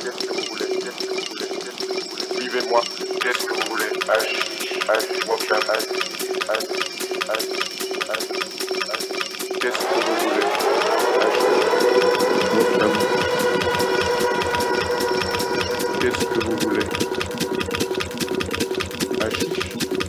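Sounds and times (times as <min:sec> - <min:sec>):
electronic percussion hits: 0:00.0 - 0:20.0
synth tone sweeping upward: 0:09.6 - 0:18.3.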